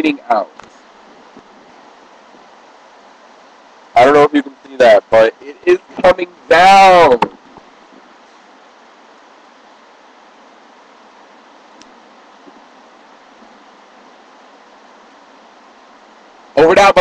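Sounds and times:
heavy rain pouring: 0:00.0 - 0:17.0.

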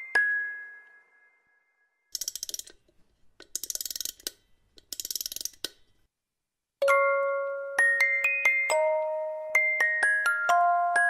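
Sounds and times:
glockenspiel music: 0:00.0 - 0:02.0, 0:06.8 - 0:11.0.

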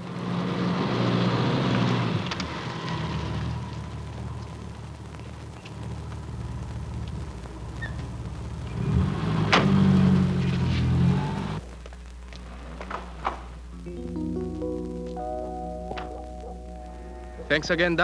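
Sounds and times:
soft music with held notes: 0:13.7 - 0:18.0.

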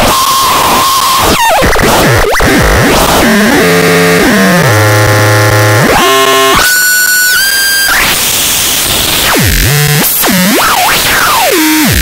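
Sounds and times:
harsh buzzing synthesizer tones: 0:00.0 - 0:12.0.

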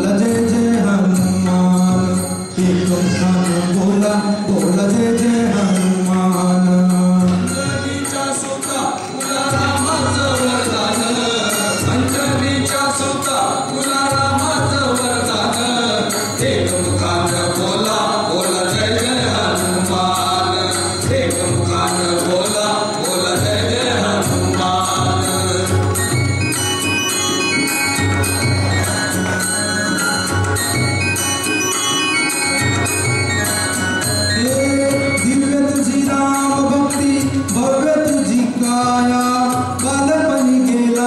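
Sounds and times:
men chanting a devotional song: 0:00.0 - 0:26.6
jingling percussion beat: 0:00.0 - 0:41.0
keyboard accompaniment: 0:00.0 - 0:41.0.

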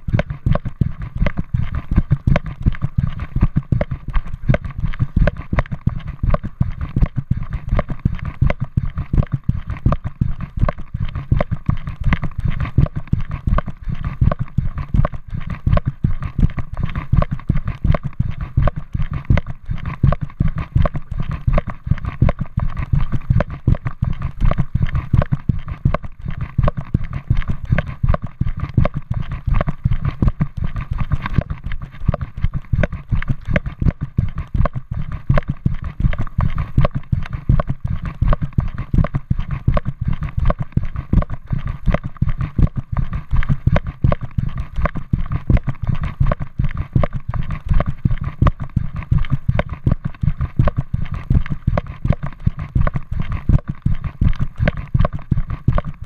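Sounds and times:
faint steady whine: 0:00.0 - 0:56.0.

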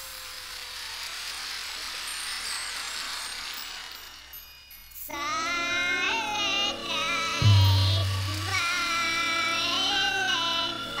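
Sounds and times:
faint held tone: 0:07.4 - 0:08.7.

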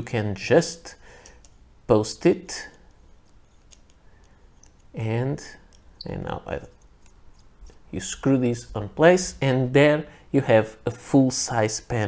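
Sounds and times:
fountain pen parts clicking: 0:02.7 - 0:04.9, 0:05.6 - 0:06.0.

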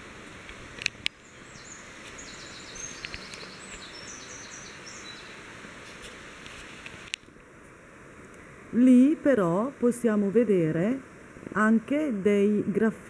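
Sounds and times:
outdoor ambience: 0:00.0 - 0:13.0
small bird singing: 0:01.1 - 0:05.4.

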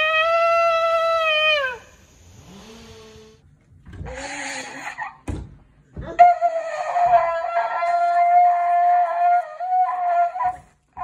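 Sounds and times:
loud breathy burst: 0:01.8 - 0:03.4.

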